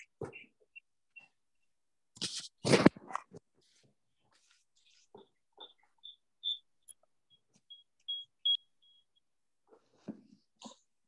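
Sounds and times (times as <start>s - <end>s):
short high-pitched chirps: 6.0s - 7.0s, 7.7s - 9.1s.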